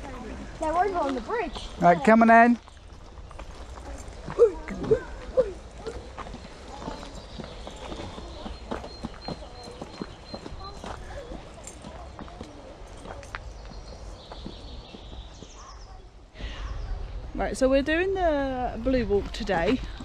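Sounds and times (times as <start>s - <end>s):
footsteps on earth steps: 0.0s - 15.8s.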